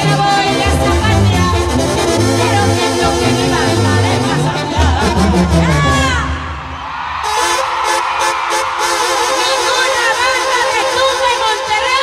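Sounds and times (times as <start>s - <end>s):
banda music: 0.0s - 12.0s.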